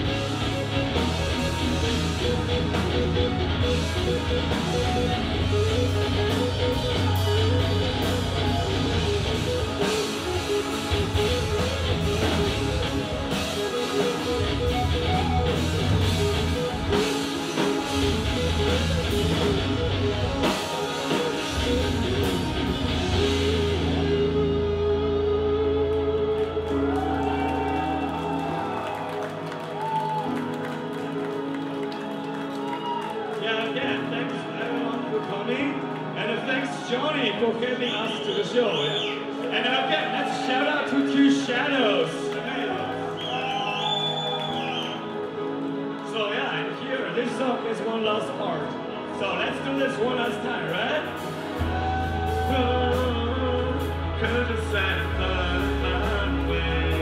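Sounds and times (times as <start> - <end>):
drum kit: 0.0 - 25.0
bass guitar: 0.0 - 31.5, 51.0 - 57.0
sustained electric guitar: 0.0 - 47.7.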